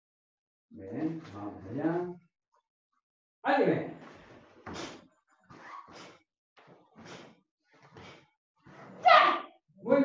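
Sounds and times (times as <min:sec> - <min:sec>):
short sharp breaths: 0:04.6 - 0:05.0, 0:05.7 - 0:06.2, 0:06.9 - 0:08.4.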